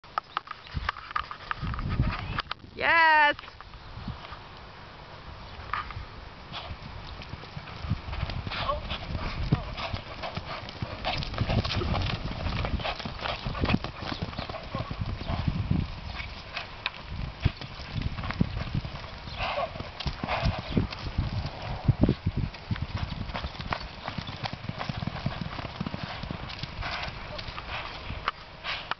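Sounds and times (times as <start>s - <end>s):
horse hoofbeats on dirt: 5.7s - 28.9s.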